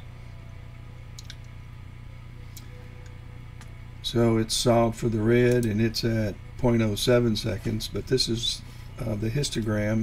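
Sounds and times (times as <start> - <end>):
low steady hum: 0.0 - 10.0
faint clicks: 1.1 - 1.6.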